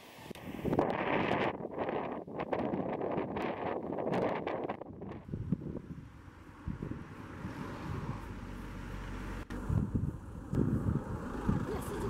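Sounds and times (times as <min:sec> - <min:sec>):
wind buffeting microphone: 0:00.3 - 0:08.5, 0:09.5 - 0:12.0.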